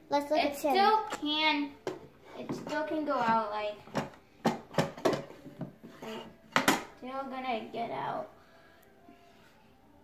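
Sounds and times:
drawer sliding and rubbing: 5.8s - 6.4s.

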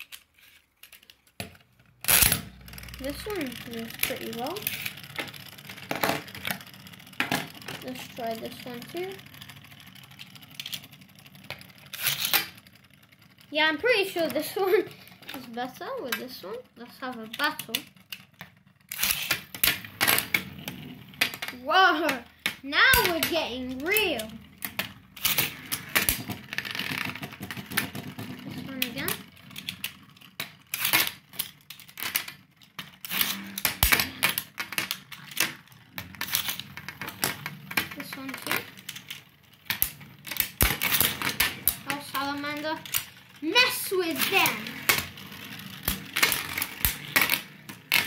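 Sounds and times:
spinning tops clattering: 2.0s - 48.0s.

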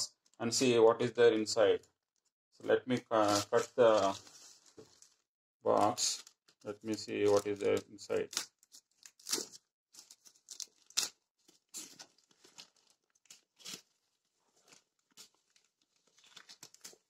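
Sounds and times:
plastic mailer crinkling: 2.9s - 14.0s.

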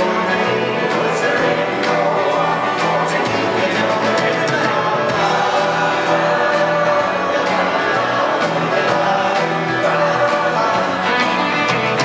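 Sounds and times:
electric guitar: 0.0s - 12.0s
strummed acoustic guitar: 0.0s - 12.0s
two voices singing in harmony: 0.0s - 12.0s.

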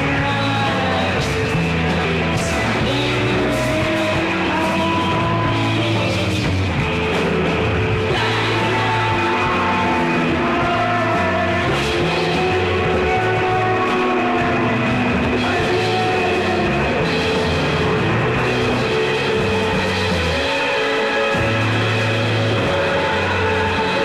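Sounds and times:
rock band playing live: 0.0s - 24.0s.

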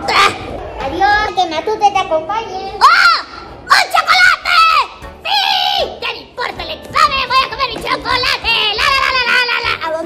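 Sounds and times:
music: 4.4s - 10.0s.

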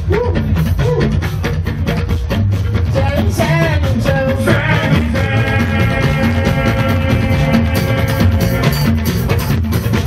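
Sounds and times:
live band music with steady beat: 0.0s - 10.0s
person singing: 2.9s - 8.9s.

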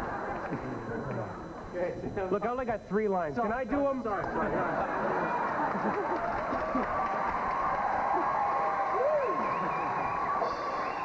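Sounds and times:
high-pitched hum: 9.1s - 11.0s.

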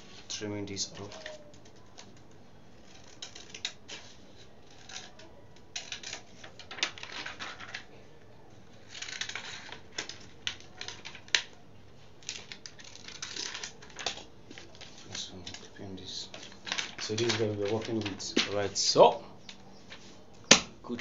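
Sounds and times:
stiff film rustling: 0.0s - 21.0s.

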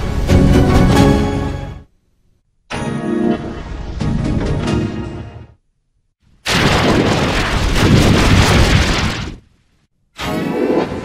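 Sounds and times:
harsh explosion-like noise blast: 6.5s - 9.4s.

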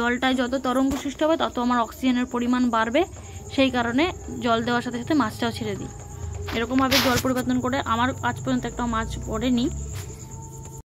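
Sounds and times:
woman talking: 0.0s - 10.1s
high-pitched insect trill: 0.0s - 10.8s.

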